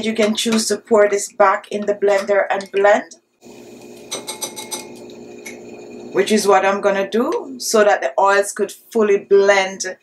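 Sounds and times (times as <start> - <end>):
plastic spoon tapping glass bowl: 4.1 - 5.0.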